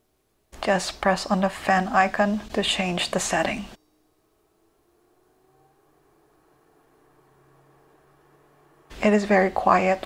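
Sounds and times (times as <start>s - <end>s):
air purifier fan hum: 0.6s - 10.0s.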